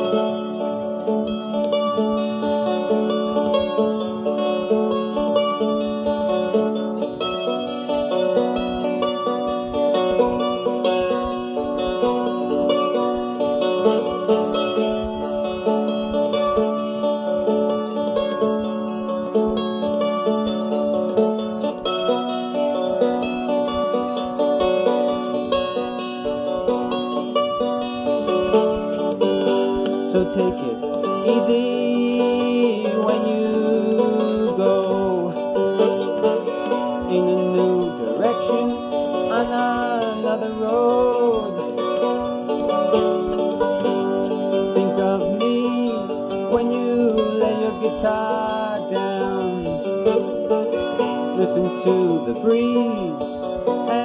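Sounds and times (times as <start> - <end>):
acoustic folk instrumental: 0.0 - 54.0.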